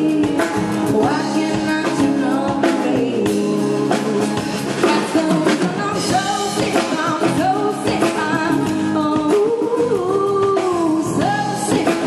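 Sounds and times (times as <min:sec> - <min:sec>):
drums keeping a steady beat: 0:00.0 - 0:12.0
woman singing into a microphone: 0:00.0 - 0:12.0.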